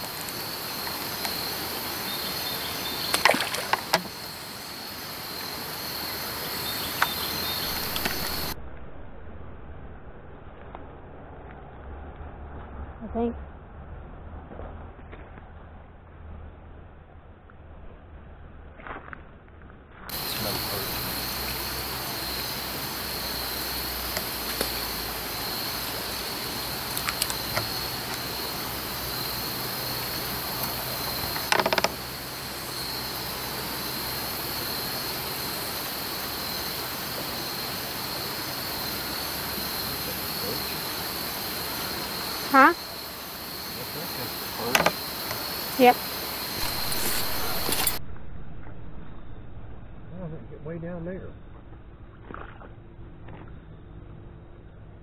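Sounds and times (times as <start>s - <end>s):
insects trilling: 0.0s - 8.6s, 20.1s - 48.0s
outdoor background hiss: 0.0s - 14.5s, 20.1s - 52.1s.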